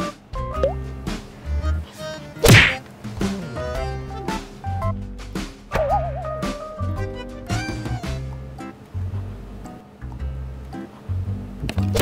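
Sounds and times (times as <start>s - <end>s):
light background music: 0.0s - 12.0s
loud whack: 2.4s - 2.8s.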